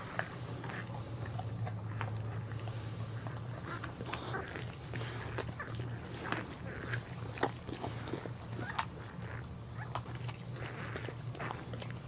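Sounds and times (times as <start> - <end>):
dog licking puppy: 0.0 - 12.0.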